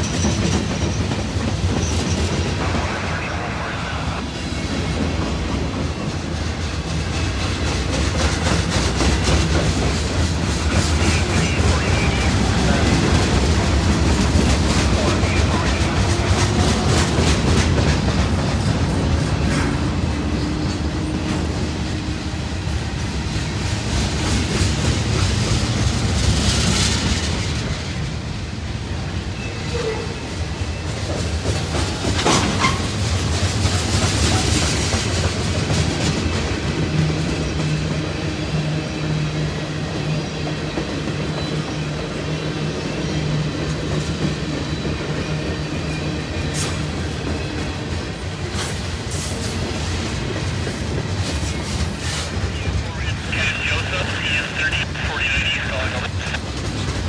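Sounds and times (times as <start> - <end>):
clickety-clack over rail joints: 0.0 - 2.5, 4.9 - 22.0, 29.6 - 38.1, 43.0 - 52.4
train wheels rumbling on rails: 0.0 - 57.0.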